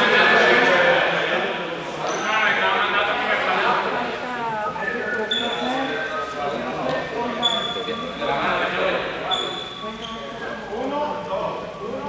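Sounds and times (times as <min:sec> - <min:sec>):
many people talking in hall: 0:00.0 - 0:12.0.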